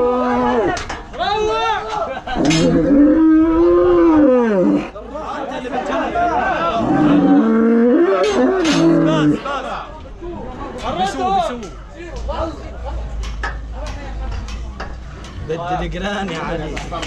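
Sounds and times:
men chattering: 0:00.0 - 0:17.0
calf bellowing: 0:02.4 - 0:04.9, 0:06.8 - 0:09.4.

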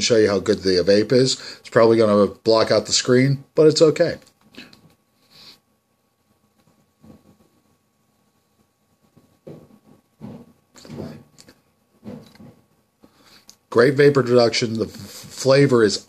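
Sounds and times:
man inhaling sharply: 0:01.4 - 0:01.7, 0:04.6 - 0:05.6.

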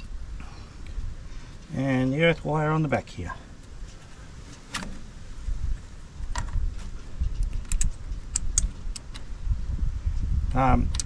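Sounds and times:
small metallic clicks: 0:06.3 - 0:09.3.

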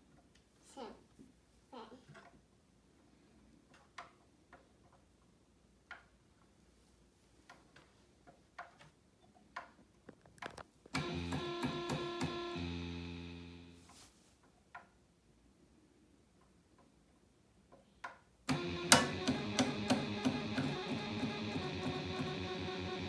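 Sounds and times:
synthesizer notes: 0:11.0 - 0:13.8, 0:18.5 - 0:23.0.

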